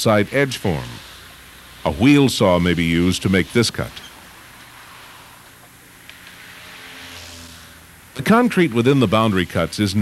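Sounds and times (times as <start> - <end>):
faint motor vehicle rushing: 0.4 - 10.0.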